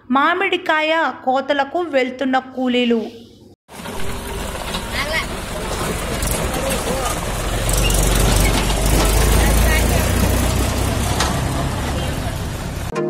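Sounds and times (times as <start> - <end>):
tractor engine running: 3.7 - 12.9.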